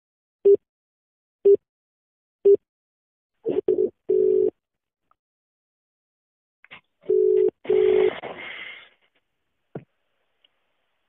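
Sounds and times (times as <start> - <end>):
telephone ringback tone: 3.7 - 4.5, 7.1 - 8.2.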